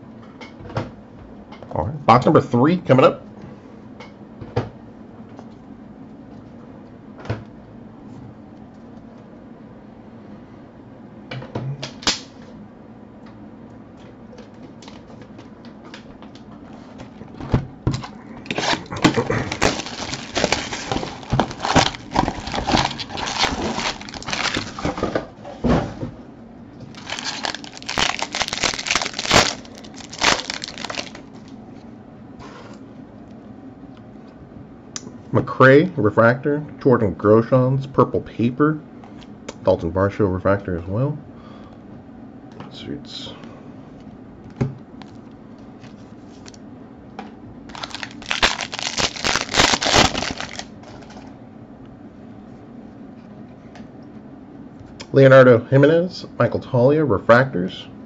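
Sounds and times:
plastic wrap crackling: 18.5s - 25.0s, 26.8s - 31.5s, 47.7s - 51.0s.

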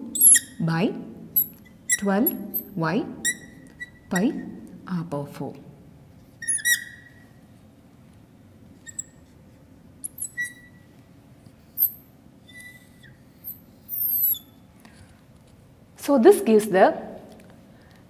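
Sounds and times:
marker squeaking on glass: 0.1s - 0.6s, 1.4s - 4.4s, 6.4s - 7.4s, 8.8s - 9.3s, 10.0s - 10.9s, 11.7s - 14.6s.

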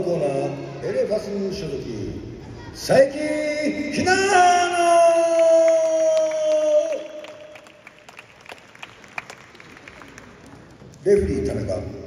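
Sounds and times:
audience clapping: 5.2s - 11.4s.

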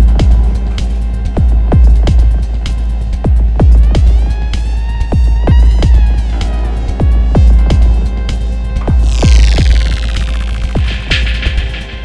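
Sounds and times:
sub-bass drone: 0.0s - 12.0s
falling high synth sweep: 9.0s - 11.0s.

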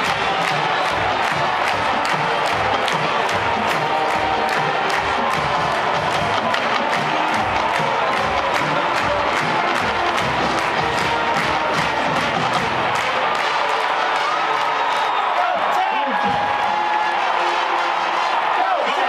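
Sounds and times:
marching band playing: 0.0s - 15.2s
stadium crowd: 0.0s - 19.0s.

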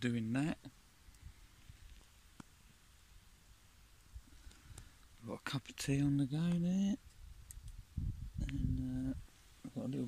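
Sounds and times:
faint hiss: 0.0s - 10.0s.

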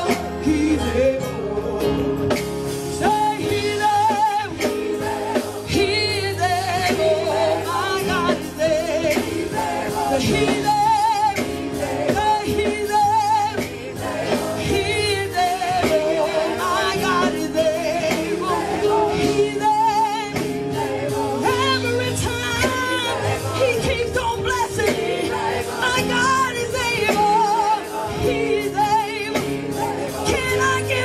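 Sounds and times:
live band with drums: 0.0s - 31.0s
women singing with vibrato: 3.0s - 31.0s.

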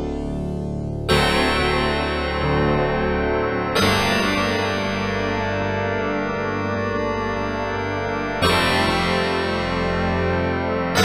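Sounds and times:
synthesizer chord ringing: 0.0s - 11.0s.

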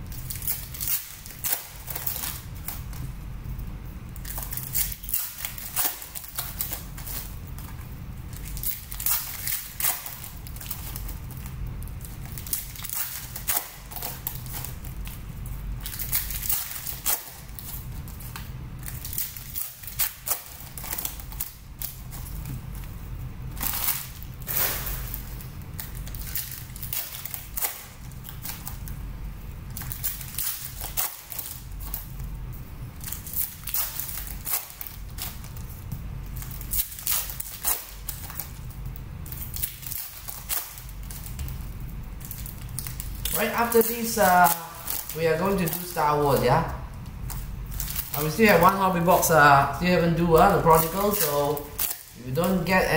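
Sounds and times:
foil wrappers crinkling: 0.0s - 52.9s
steady low hum: 0.0s - 52.9s.

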